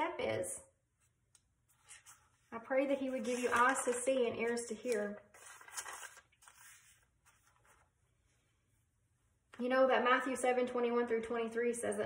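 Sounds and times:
paper pages rustling: 1.7 - 8.0.

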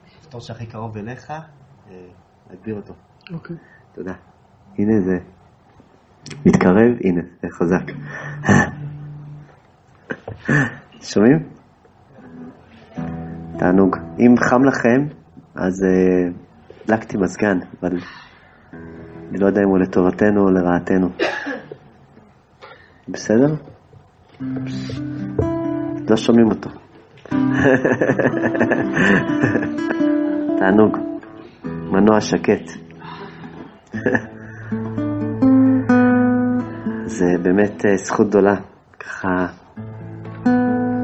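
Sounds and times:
acoustic guitar playing: 6.3 - 7.0, 7.6 - 9.6, 12.1 - 17.3, 18.6 - 22.0, 24.3 - 38.4, 39.7 - 41.0
low guitar note ringing: 24.4 - 26.3.

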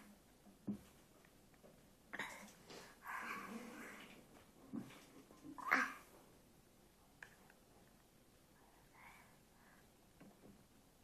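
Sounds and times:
soft low murmur: 0.0 - 6.4.

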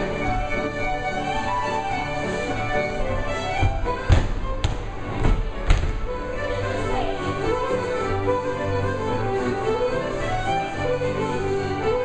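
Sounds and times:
folk dance band playing: 0.0 - 12.0
feet thumping on wooden floor: 3.0 - 6.3.

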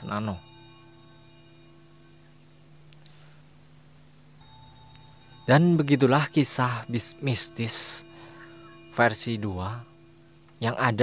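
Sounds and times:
faint drone music: 0.0 - 11.0.

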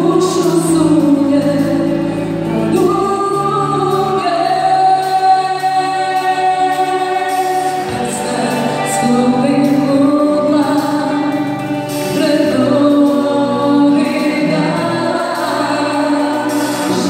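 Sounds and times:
pop-rock band playing a ballad: 0.0 - 17.0
woman singing: 0.0 - 17.0.

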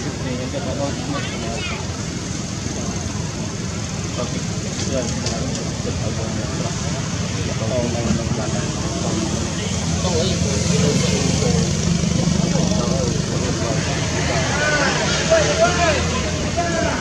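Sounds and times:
indistinct voices: 5.0 - 17.0.

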